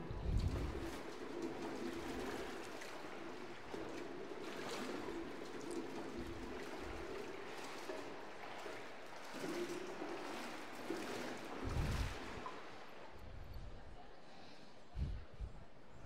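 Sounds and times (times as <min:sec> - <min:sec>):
water trickling and sloshing: 0:00.0 - 0:16.0.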